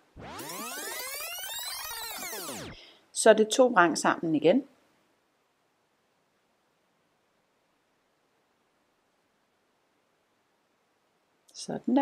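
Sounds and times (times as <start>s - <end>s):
electronic rising and falling sweep: 0.0s - 2.8s.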